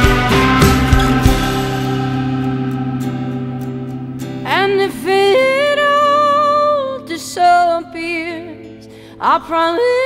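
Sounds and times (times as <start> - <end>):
band chord: 0.0 - 4.5
woman singing: 4.4 - 10.0.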